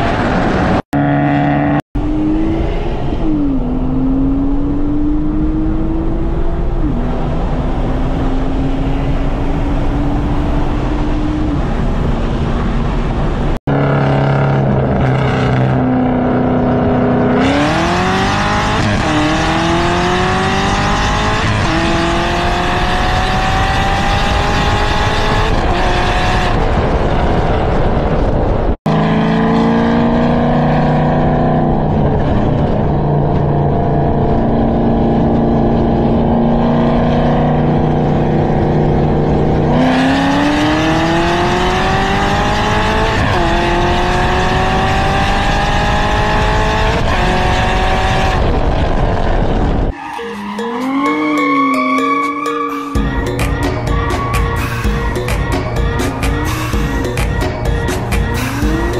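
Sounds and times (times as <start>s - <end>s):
car engine accelerating through gears: 0.0s - 51.7s, 58.2s - 58.9s.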